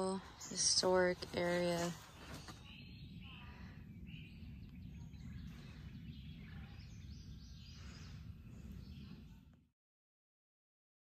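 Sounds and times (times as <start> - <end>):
bird chirps: 0.0 - 9.5
steady low rumble: 0.0 - 9.7.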